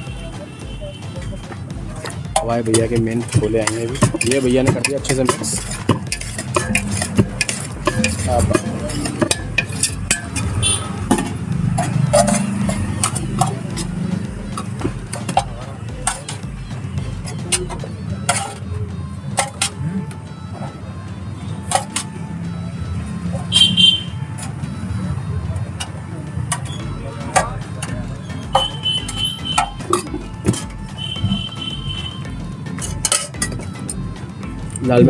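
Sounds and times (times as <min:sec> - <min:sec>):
metal spoon scraping steel bowl: 0:01.5 - 0:16.4, 0:17.1 - 0:18.7, 0:19.3 - 0:19.9, 0:25.8 - 0:34.0.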